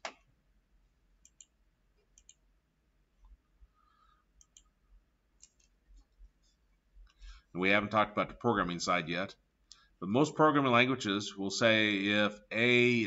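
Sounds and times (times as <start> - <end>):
computer mouse clicks: 1.2 - 2.4, 4.4 - 4.7, 5.4 - 5.8.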